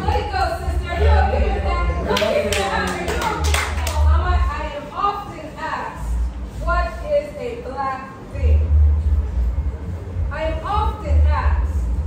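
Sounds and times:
people's voices: 0:00.0 - 0:09.0
steady low hum: 0:00.0 - 0:12.0
hand claps: 0:02.1 - 0:04.0.

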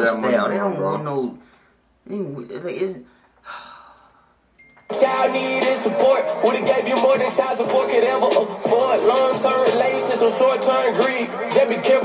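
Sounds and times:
breathy sigh: 0:03.1 - 0:04.4.

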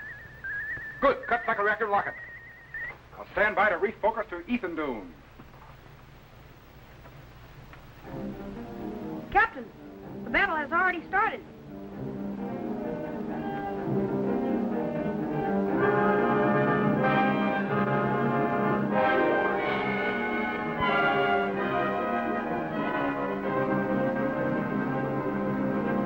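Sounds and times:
dramatic orchestral music with brass: 0:15.3 - 0:26.0.

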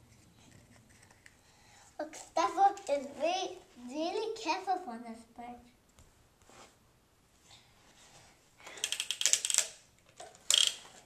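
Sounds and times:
toy ratchet clicking: 0:08.7 - 0:09.8, 0:10.5 - 0:10.8.

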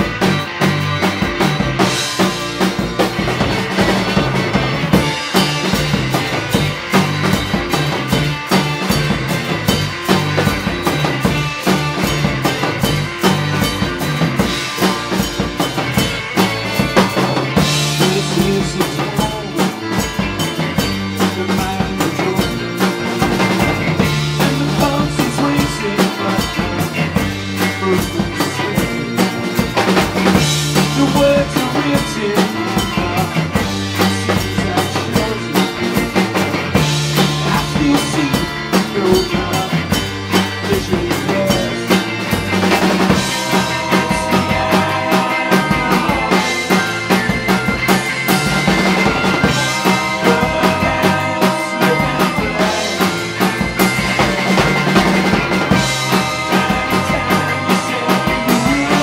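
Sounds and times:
drum kit beating: 0:00.0 - 0:59.0
electric guitar: 0:00.0 - 0:59.0.

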